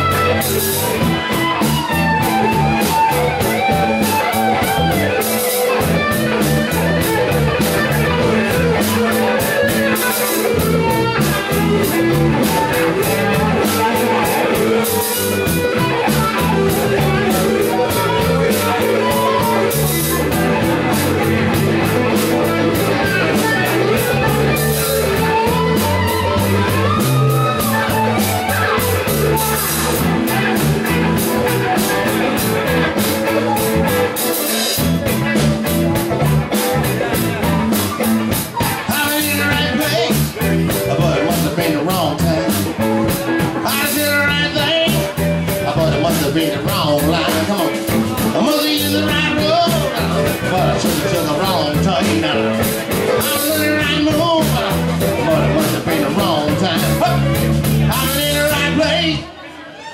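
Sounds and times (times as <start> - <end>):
drum kit with cymbals: 0.0 - 59.0
electric guitar: 0.0 - 59.6
keyboard: 0.0 - 59.9.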